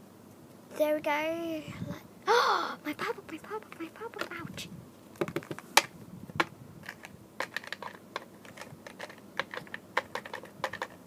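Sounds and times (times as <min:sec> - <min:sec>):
typing on computer keyboard: 0:07.4 - 0:11.0.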